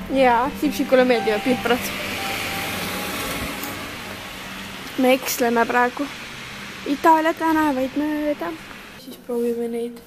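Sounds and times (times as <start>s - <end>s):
car driving past slowly: 0.0s - 9.0s.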